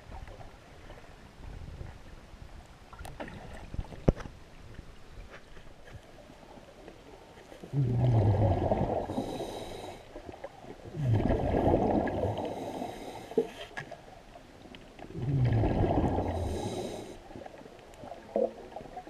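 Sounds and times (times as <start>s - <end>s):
low falling gurgle: 7.6s - 19.0s
diver exhaling bubbles: 7.7s - 10.0s, 10.9s - 13.4s, 15.0s - 17.2s.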